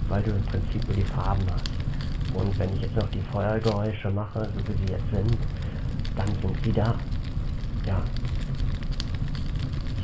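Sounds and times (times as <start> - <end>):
fire crackling: 0.0 - 10.0.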